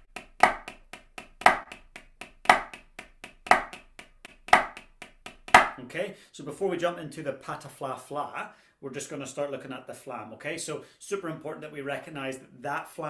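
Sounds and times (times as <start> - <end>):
drumsticks on practice pad: 0.0 - 5.8.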